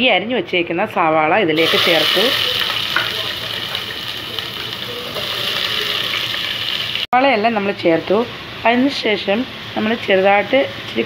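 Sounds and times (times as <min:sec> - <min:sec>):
onions sizzling in hot oil: 0:01.6 - 0:07.1.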